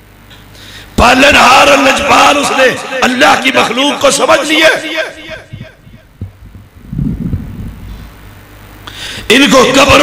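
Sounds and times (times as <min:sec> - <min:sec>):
low electrical hum: 0:00.0 - 0:10.0
breath noise: 0:00.3 - 0:01.0, 0:07.7 - 0:08.2, 0:08.8 - 0:09.3
microphone handling thumps: 0:05.2 - 0:08.4.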